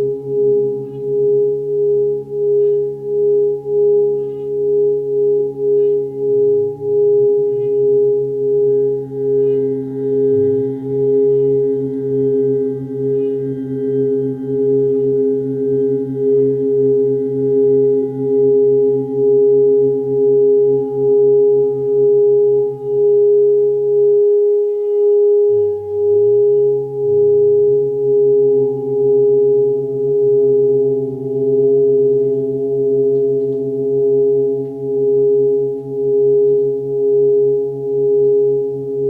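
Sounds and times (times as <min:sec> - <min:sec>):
drone of ringing tones: 0:00.0 - 0:39.0.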